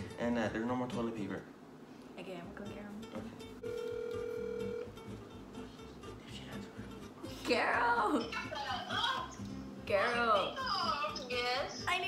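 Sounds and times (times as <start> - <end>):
telephone ringback tone: 3.6 - 5.0.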